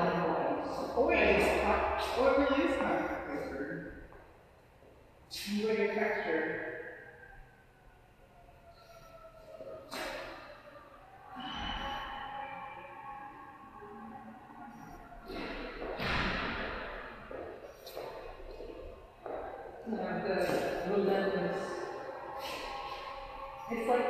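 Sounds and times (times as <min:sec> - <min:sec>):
faint indistinct voices: 0:08.5 - 0:18.4.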